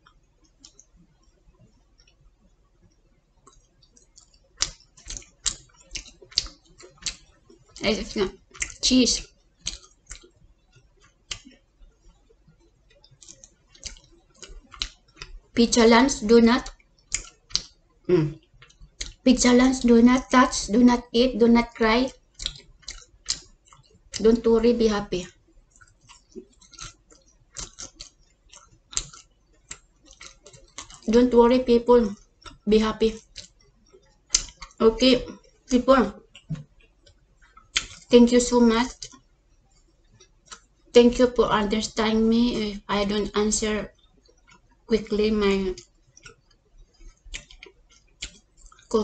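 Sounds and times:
person chewing pizza: 0.0s - 15.6s, 16.6s - 19.3s, 22.1s - 24.2s, 25.3s - 31.1s, 32.0s - 38.2s, 38.9s - 40.8s, 43.9s - 44.9s, 45.7s - 49.0s.

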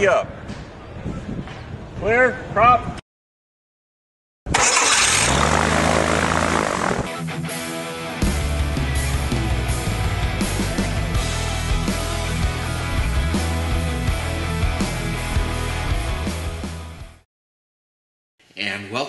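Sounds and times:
propeller engine starting: 4.5s - 7.2s
rock music with steady beat: 7.1s - 17.2s.

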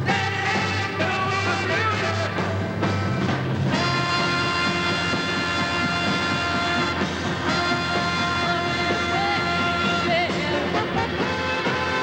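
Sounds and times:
soul-rock band holding a chord: 0.0s - 12.0s
trumpet and saxophone sustaining: 3.7s - 12.0s.

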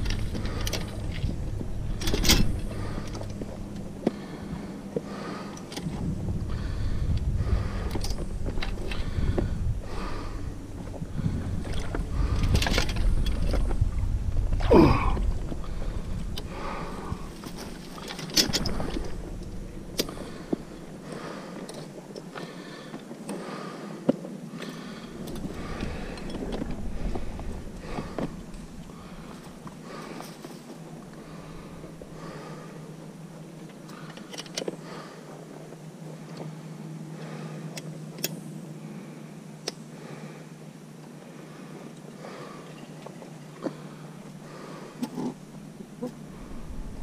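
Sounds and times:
faint low murmur: 0.0s - 47.0s.

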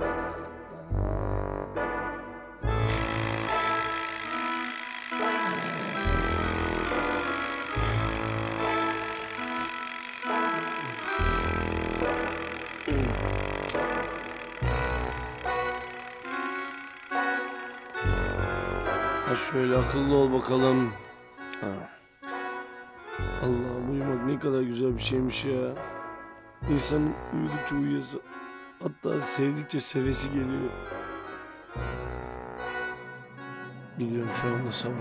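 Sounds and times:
background music: 0.0s - 35.0s
alarm clock bell ringing: 2.8s - 20.7s.

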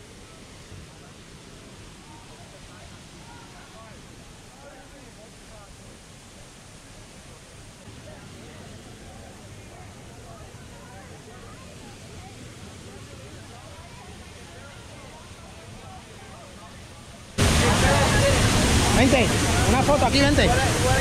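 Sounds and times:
people chattering: 0.0s - 21.0s
waterfall rushing: 0.0s - 21.0s.

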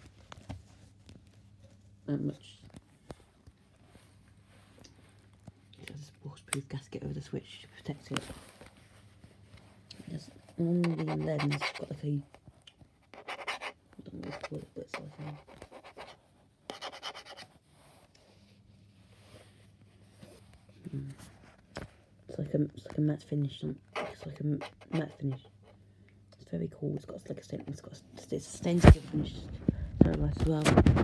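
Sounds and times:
low room hum: 0.0s - 31.0s
fingertip scratching plastic and metal: 10.7s - 12.0s, 13.0s - 17.5s, 24.0s - 25.5s.

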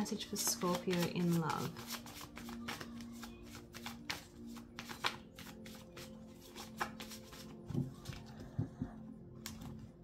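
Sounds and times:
cards being shuffled: 0.2s - 8.4s, 9.4s - 10.0s.

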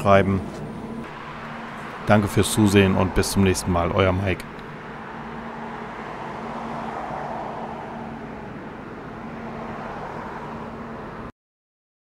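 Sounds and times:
steady hum inside car: 0.0s - 11.3s.

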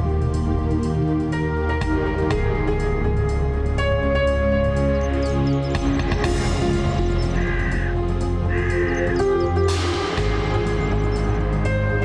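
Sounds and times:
background music sustained tones: 0.0s - 12.0s.

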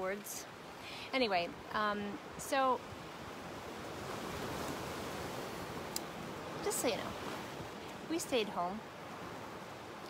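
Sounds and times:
ocean surf washing on beach: 0.0s - 10.0s.

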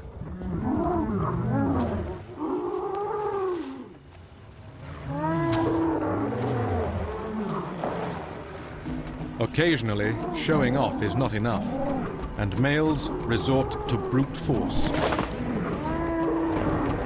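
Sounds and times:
dinosaur calls: 15.4s - 17.0s.

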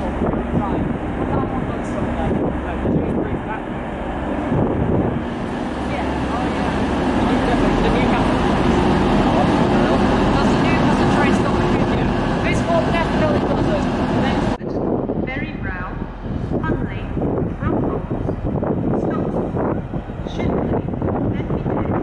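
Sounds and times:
diesel train engine: 0.0s - 22.0s.

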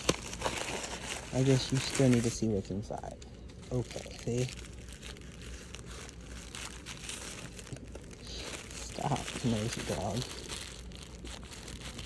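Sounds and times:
plastic mailer bag crinkling: 0.0s - 12.0s.

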